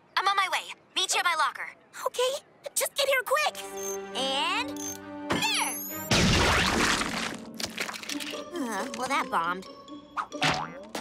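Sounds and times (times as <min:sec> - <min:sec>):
cartoon explosion splatter: 0:06.1 - 0:07.3.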